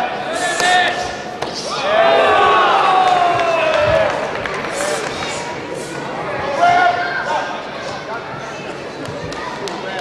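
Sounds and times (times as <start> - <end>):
spectators shouting in a hall: 0.0 - 7.6.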